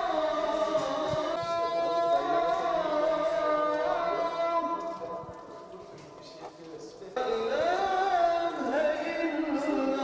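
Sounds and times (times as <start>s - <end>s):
mixed background noise: 0.0s - 10.0s.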